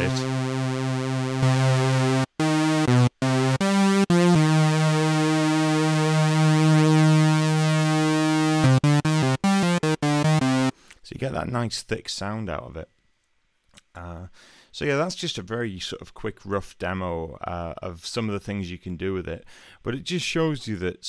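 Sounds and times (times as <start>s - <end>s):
sawtooth synthesizer notes: 0.0s - 10.7s.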